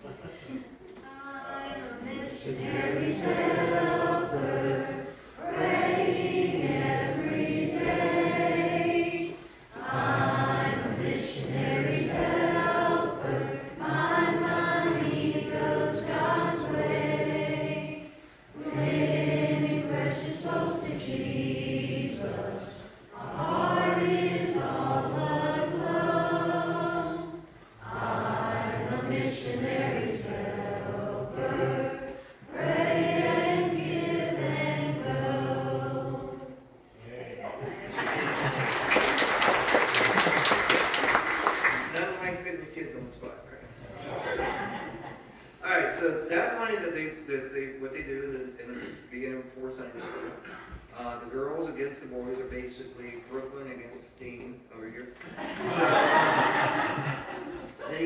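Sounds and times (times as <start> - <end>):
choir singing a hymn: 0.0 - 39.2, 43.9 - 45.5, 55.2 - 58.0.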